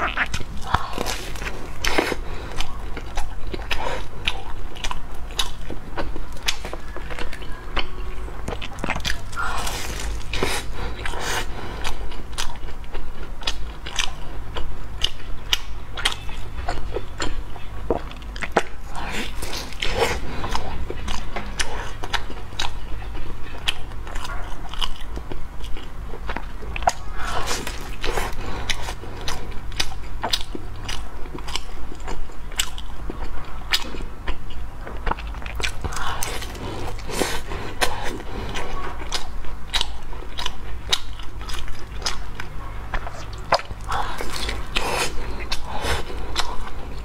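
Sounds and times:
chewing bread roll: 0.0s - 47.0s.

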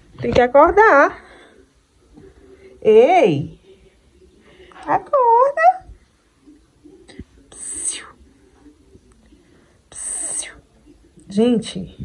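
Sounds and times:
woman whispering hiss: 7.5s - 8.2s, 9.9s - 10.7s.

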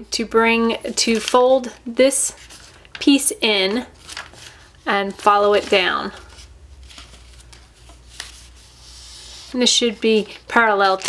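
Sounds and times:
paper being folded: 2.4s - 11.0s.

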